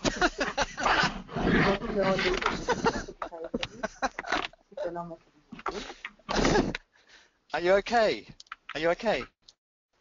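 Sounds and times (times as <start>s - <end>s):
person talking: 1.5s - 5.9s, 7.5s - 9.4s.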